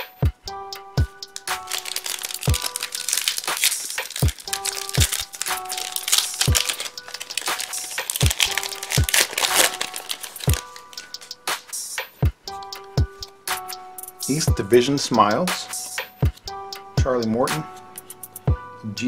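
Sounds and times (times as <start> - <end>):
background music with low beat: 0.0 - 19.0
plastic wrapper crinkling and tearing: 1.4 - 11.3.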